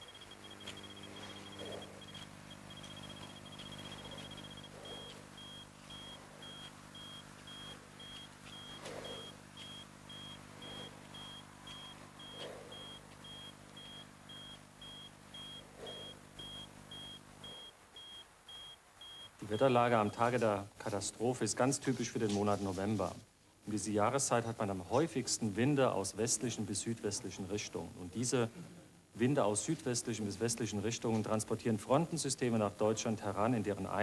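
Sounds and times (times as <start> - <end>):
low droning hum: 0.0 - 17.7
high electronic beeping: 0.0 - 19.7.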